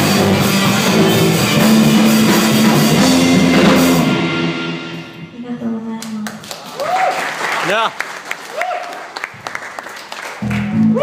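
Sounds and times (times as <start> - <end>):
electric guitar and drums chord: 0.0 - 5.9
people clapping: 6.0 - 11.0.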